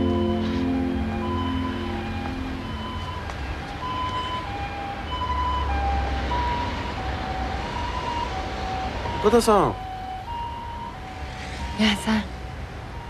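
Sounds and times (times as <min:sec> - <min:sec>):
low traffic rumble: 0:00.0 - 0:13.0
two-tone emergency siren: 0:00.0 - 0:13.0.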